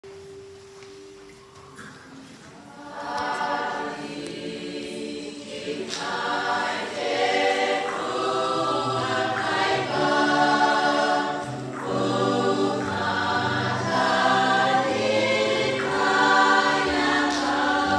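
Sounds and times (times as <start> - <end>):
choir singing: 2.6 - 17.9.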